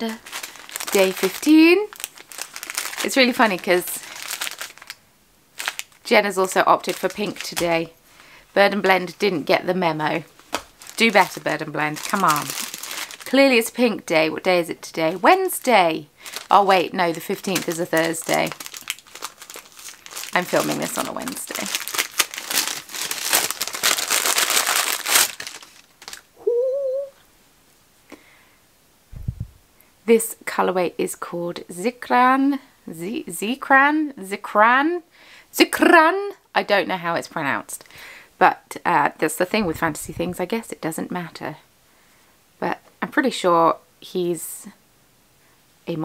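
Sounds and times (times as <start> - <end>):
paper bag crinkling: 0.0 - 5.0, 5.6 - 7.9, 10.2 - 13.4, 16.2 - 26.3
person humming: 26.4 - 27.2.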